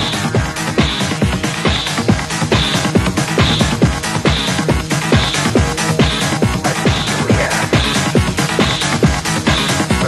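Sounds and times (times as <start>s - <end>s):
electronic dance music: 0.0s - 10.0s
fast kick drum beat: 0.0s - 10.0s.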